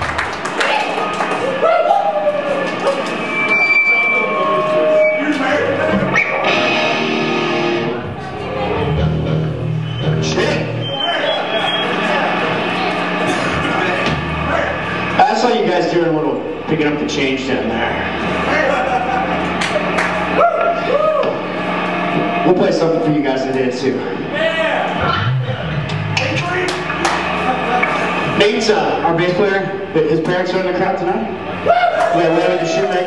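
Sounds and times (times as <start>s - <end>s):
crowd noise and voices: 0.0s - 33.0s
thin high whine: 2.2s - 8.2s
punk band chord ringing: 3.2s - 10.8s, 11.4s - 20.4s.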